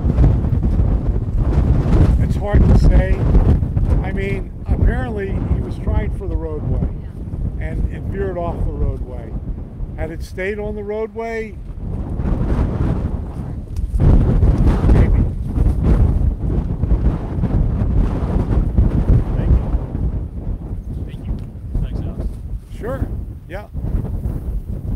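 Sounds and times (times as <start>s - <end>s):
wind buffeting microphone: 0.0s - 24.9s.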